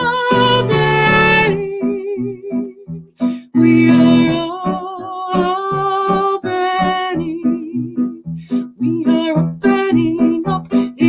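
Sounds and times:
plucked-string accompaniment: 0:00.0 - 0:11.0.

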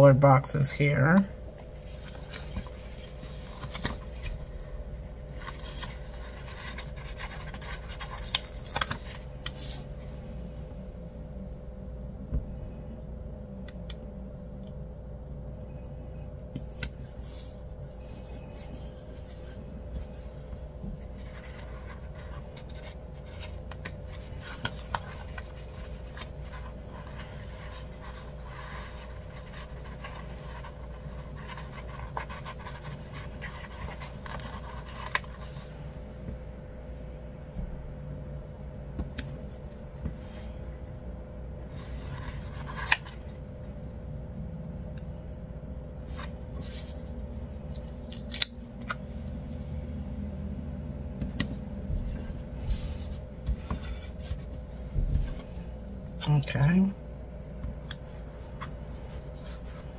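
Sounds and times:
steady low hum: 0:00.0 - 0:59.9
paper rustling and scratching: 0:01.7 - 0:09.9, 0:16.8 - 0:35.8, 0:41.7 - 0:43.3, 0:51.9 - 0:55.6.

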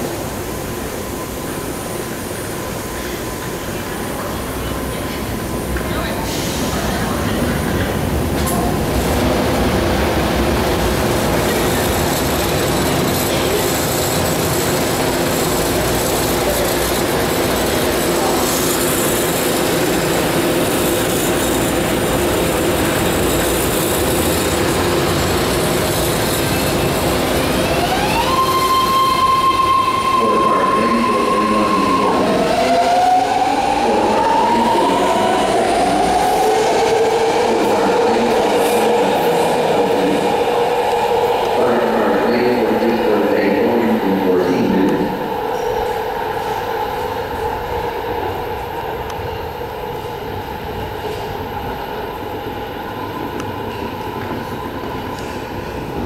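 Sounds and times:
train motors and wheels rumbling: 0:00.0 - 0:56.0.

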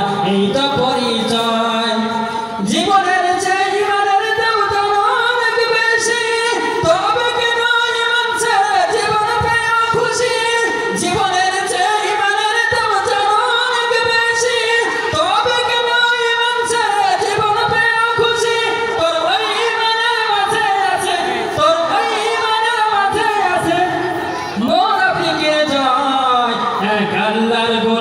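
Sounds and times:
man singing unaccompanied: 0:00.0 - 0:24.0.

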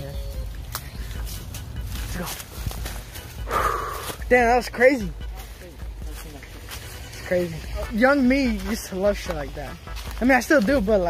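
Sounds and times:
dry reeds rustling: 0:00.0 - 0:11.0
low rumble of wind: 0:00.0 - 0:11.0
scattered clicks: 0:00.1 - 0:03.4
footsteps on dry litter: 0:00.4 - 0:11.0.

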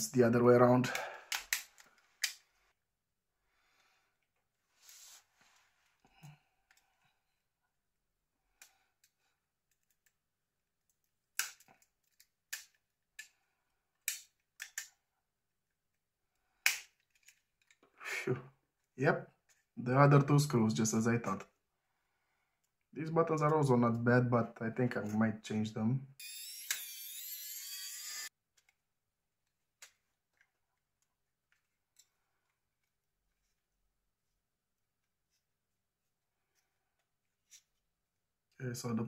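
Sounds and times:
plastic clips snapping: 0:01.3 - 0:02.4, 0:14.0 - 0:14.9.

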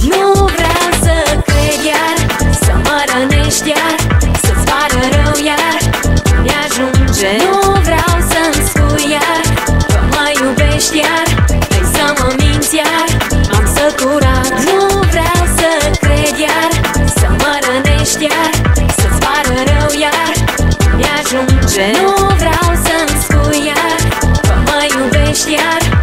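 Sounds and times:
pop song with electronic beat: 0:00.0 - 0:26.0.

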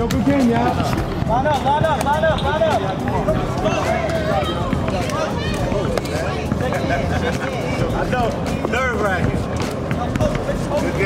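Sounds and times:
children and adults talking: 0:00.0 - 0:11.0
outdoor background noise: 0:00.0 - 0:11.0.

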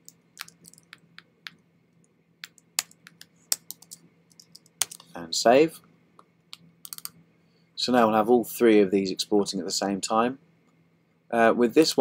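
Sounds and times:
keyboard keystrokes and clicks: 0:00.0 - 0:01.6, 0:02.4 - 0:05.1, 0:06.5 - 0:07.1.

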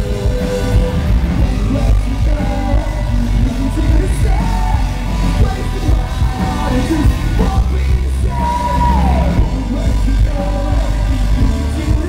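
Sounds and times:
live rock band: 0:00.0 - 0:12.0
man singing and yelling: 0:00.0 - 0:12.0.

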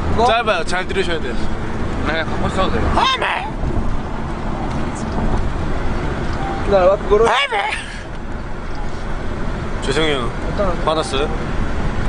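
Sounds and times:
car cabin road noise: 0:00.0 - 0:12.0.

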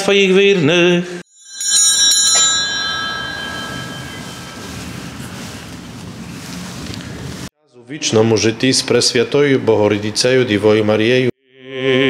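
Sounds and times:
bell ringing: 0:01.3 - 0:06.0
outdoor background noise: 0:02.5 - 0:07.5.

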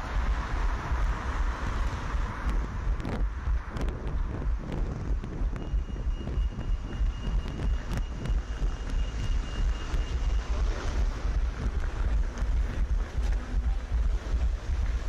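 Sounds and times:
running footsteps: 0:00.0 - 0:15.0
wind buffeting microphone: 0:00.0 - 0:15.0.

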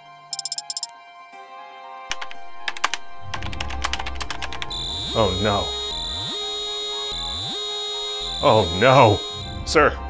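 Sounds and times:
electronic alarm tones: 0:00.4 - 0:00.9, 0:04.7 - 0:09.6.

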